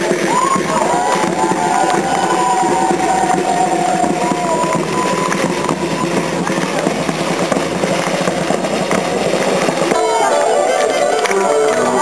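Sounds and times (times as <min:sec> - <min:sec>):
drums and hand percussion: 0:00.0 - 0:12.0.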